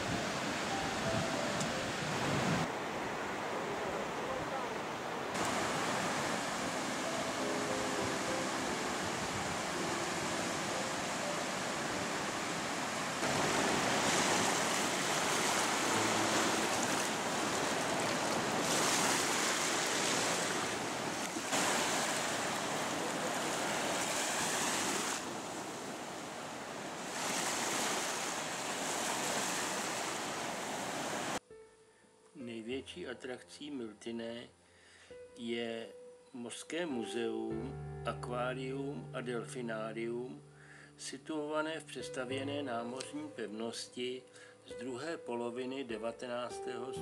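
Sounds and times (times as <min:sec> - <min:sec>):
waves breaking on a beach: 0:00.0 - 0:31.4.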